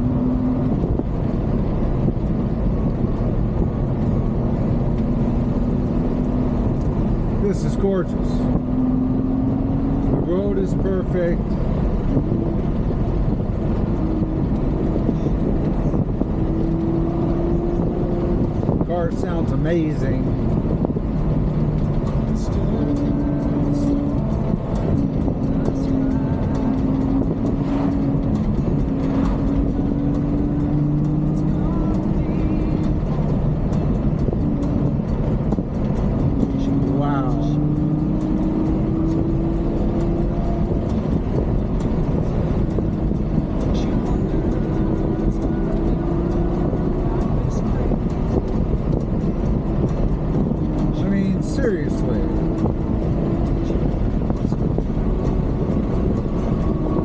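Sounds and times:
car engine cruising: 0.0s - 57.0s
road and tyre noise: 0.0s - 57.0s.

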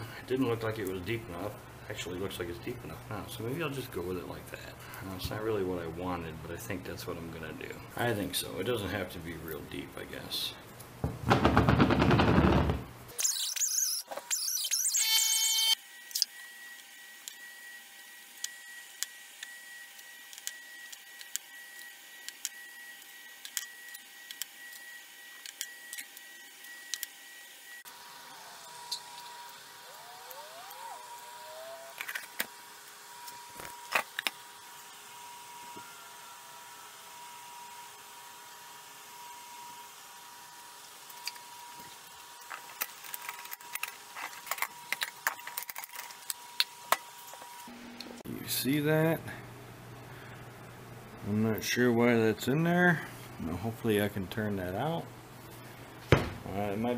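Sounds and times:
faint electrical hum: 0.0s - 11.6s, 12.2s - 56.9s.

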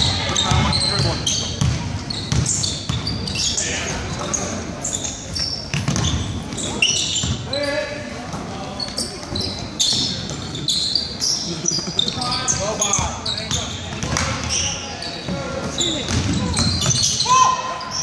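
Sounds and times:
sneakers squeaking on court: 0.0s - 18.0s
spectators chatter and shouts: 0.0s - 18.0s
basketball dribbling: 0.1s - 3.2s.

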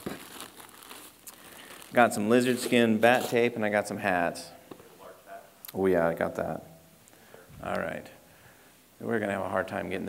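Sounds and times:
plastic wrapping crinkling: 0.0s - 3.6s.

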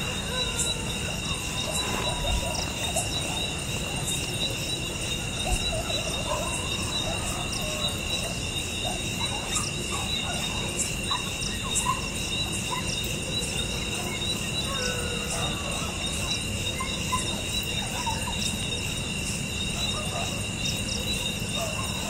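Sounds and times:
insects trilling: 0.0s - 22.0s.

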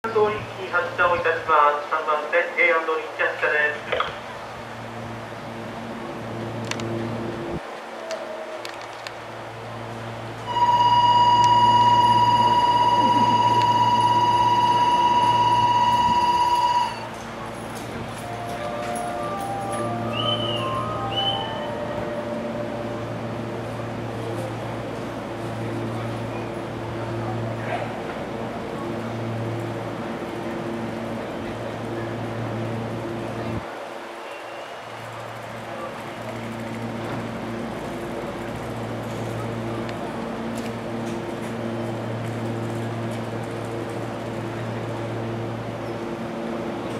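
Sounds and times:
electric train humming: 0.0s - 46.9s
electronic departure bell ringing: 10.5s - 23.2s.

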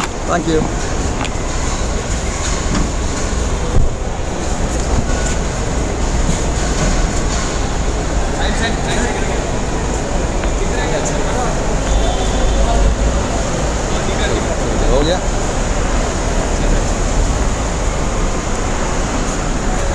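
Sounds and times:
faint voices: 0.0s - 19.9s
low rumbling of vehicles: 0.0s - 19.9s.

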